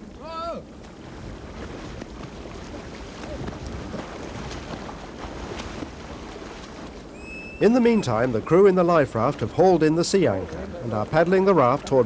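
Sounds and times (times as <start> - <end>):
wind on microphone: 0.0 - 8.6
faint water splashes: 0.0 - 12.0.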